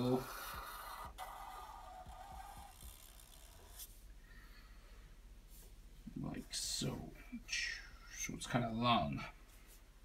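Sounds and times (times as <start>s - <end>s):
marker rubbing on paper: 0.0s - 4.0s.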